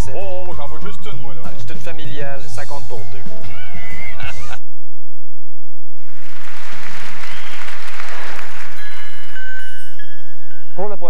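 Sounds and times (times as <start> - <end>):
commercial music: 0.0 - 4.6, 6.3 - 11.0
audience applause and cheering: 6.0 - 9.7.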